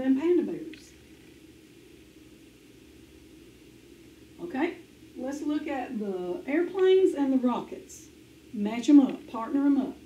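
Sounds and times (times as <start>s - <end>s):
soft even hiss: 0.0s - 10.0s
steady low hum: 0.0s - 10.0s.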